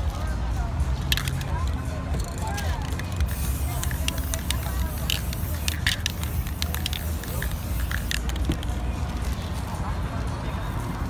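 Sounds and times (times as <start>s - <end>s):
low rumble of street noise: 0.0s - 11.0s
spray paint can hissing: 1.0s - 9.3s.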